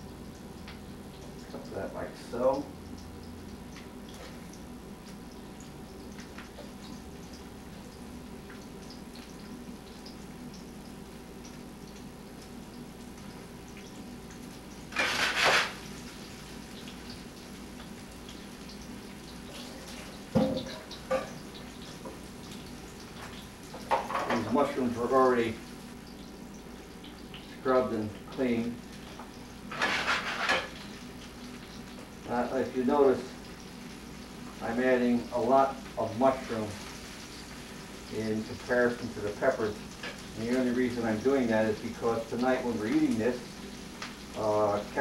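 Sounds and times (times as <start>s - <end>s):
background hum: 0.0s - 45.0s
vegetables sizzling in a pan: 0.0s - 45.0s.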